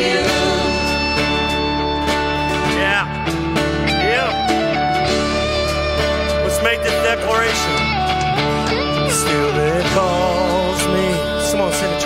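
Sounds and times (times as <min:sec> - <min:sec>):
voices singing worship song: 0:00.0 - 0:02.4, 0:09.2 - 0:12.0
instrumental accompaniment: 0:00.0 - 0:12.0.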